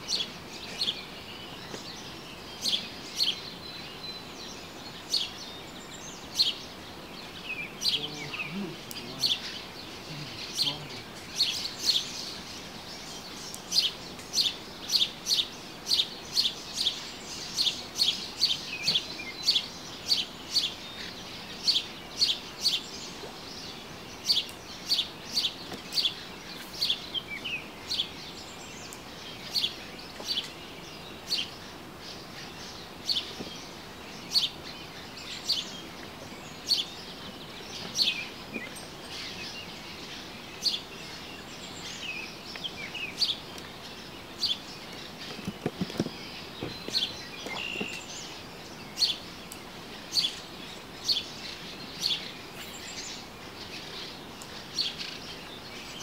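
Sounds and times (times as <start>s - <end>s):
outdoor background hiss: 0.0s - 56.0s
songbird chirping: 0.0s - 56.0s.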